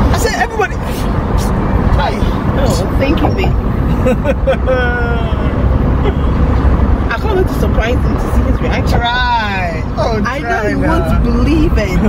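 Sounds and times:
car cabin road and engine rumble: 0.0 - 12.0
people laughing: 3.8 - 6.5.

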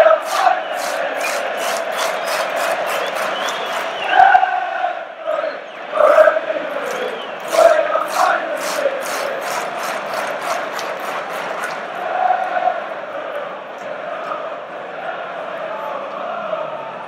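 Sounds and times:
sharp rhythmic claps: 0.0 - 4.3, 6.8 - 12.6
crowd chanting in unison: 0.0 - 17.0.

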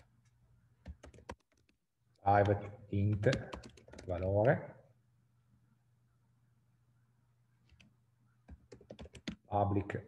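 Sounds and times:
faint keyboard typing: 0.0 - 4.3, 7.6 - 9.5.

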